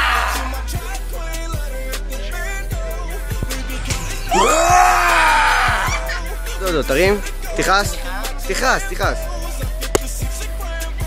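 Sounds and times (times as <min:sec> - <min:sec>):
man screaming: 0:00.0 - 0:00.7, 0:04.3 - 0:06.2
hip-hop beat: 0:00.0 - 0:11.0.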